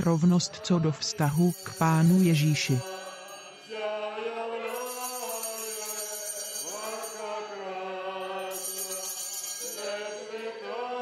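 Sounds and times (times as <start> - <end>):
voices chanting long notes: 2.9 - 11.0.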